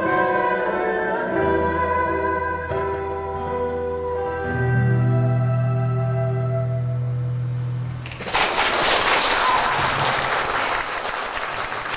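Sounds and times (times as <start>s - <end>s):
audience clapping: 8.0s - 11.9s.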